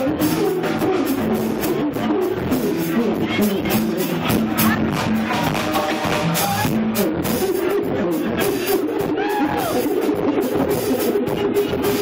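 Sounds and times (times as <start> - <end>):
busy drum beat: 0.0 - 12.0
live band playing instrumental: 0.0 - 12.0.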